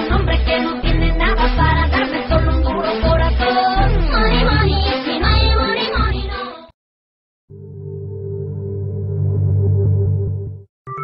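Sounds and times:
low synthesizer drone: 0:07.5 - 0:10.7.

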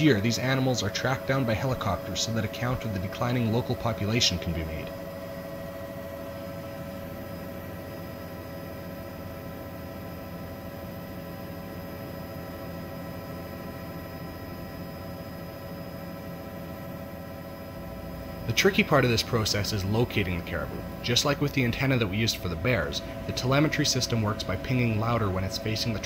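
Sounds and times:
constant whine: 0:00.0 - 0:26.0
helicopter cabin noise: 0:00.0 - 0:26.0.

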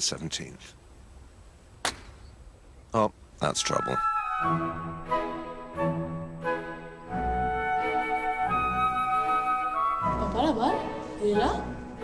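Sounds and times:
golf club striking ball: 0:01.8 - 0:02.3.

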